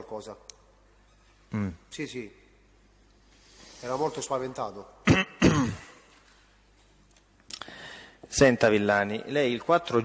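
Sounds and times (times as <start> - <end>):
person coughing: 5.0 - 6.0.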